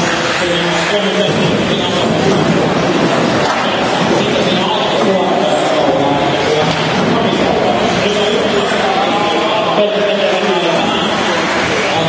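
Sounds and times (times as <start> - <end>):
background voices: 0.0 - 12.0.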